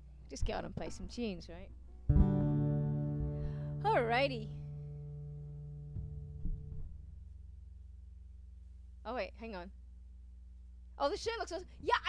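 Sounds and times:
acoustic guitar chord strummed: 2.1 - 7.9.

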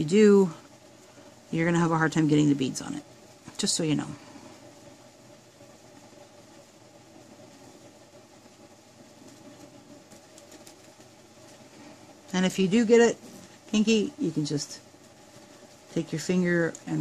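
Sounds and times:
faint low room hum: 0.0 - 17.0.

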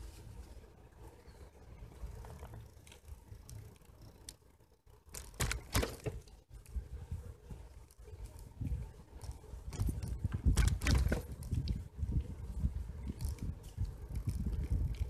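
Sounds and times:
bicycle rattling over bumps: 0.0 - 15.0
tyres rolling on asphalt: 0.0 - 15.0
wind buffeting microphone: 6.5 - 15.0.

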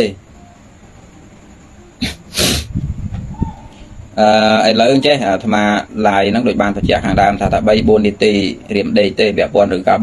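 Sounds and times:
man talking: 0.0 - 0.2, 4.2 - 10.0
sharp rush of breath: 2.0 - 2.8.

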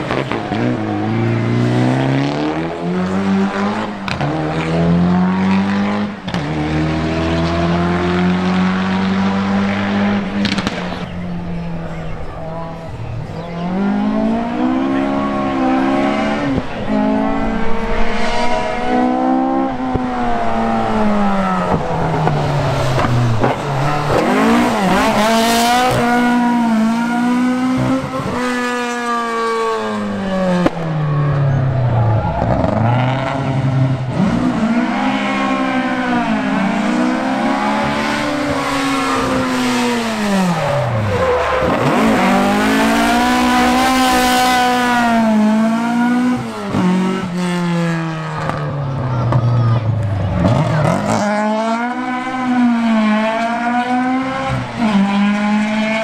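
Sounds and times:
cars braking and passing: 0.0 - 56.0
rally car engines revving: 0.0 - 56.0.

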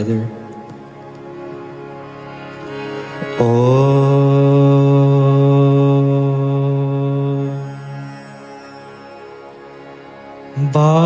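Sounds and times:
man chanting low om: 0.0 - 0.5, 3.2 - 8.5, 10.5 - 11.0.

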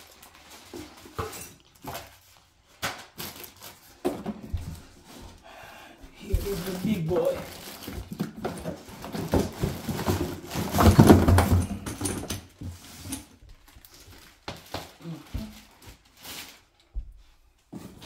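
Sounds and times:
plastic wrapping crinkling: 0.0 - 5.0, 6.2 - 11.9, 12.8 - 17.0.

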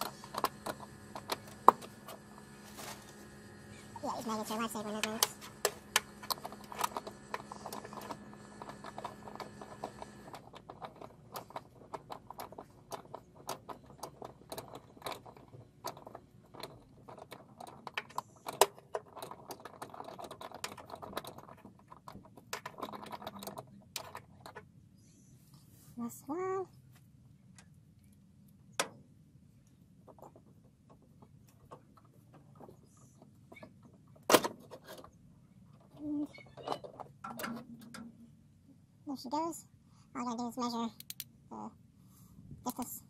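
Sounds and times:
wrench metallic clicks and taps: 41.0 - 41.3.

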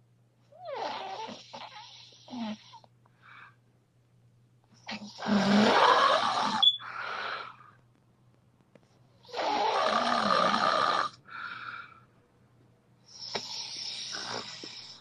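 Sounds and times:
person snoring: 0.6 - 2.8, 4.9 - 7.6, 9.2 - 11.9, 13.1 - 15.0.

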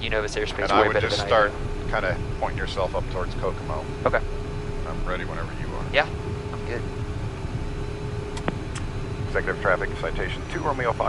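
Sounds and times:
jet engines humming: 0.0 - 11.0.

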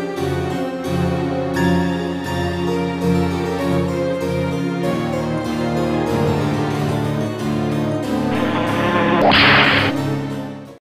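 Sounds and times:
whoosh sound effect: 8.3 - 10.3.

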